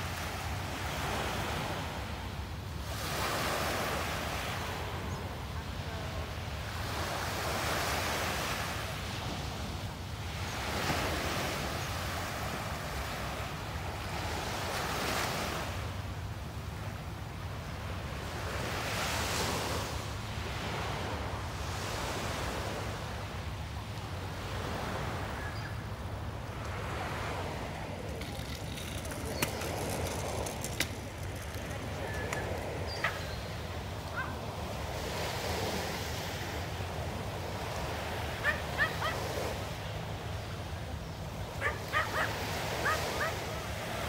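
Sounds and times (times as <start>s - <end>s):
small waves washing on sand: 0.0s - 44.0s.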